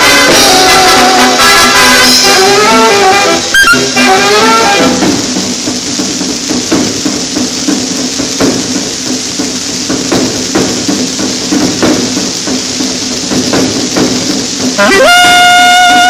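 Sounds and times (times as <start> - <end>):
drum hits: 0.0 - 16.0
record surface hiss: 0.0 - 16.0
swing big band record: 0.0 - 16.0.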